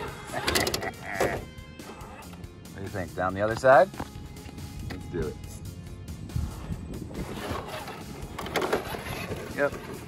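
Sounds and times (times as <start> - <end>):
electric motor and gears whining: 4.2 - 10.0.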